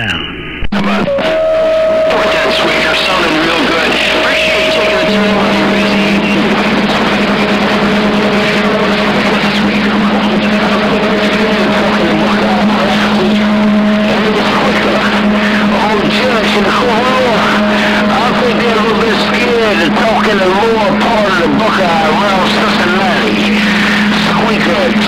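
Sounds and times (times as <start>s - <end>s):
faint garbled voices: 0.0s - 25.0s
radio static hiss: 0.0s - 25.0s
low steady tone: 1.2s - 21.4s.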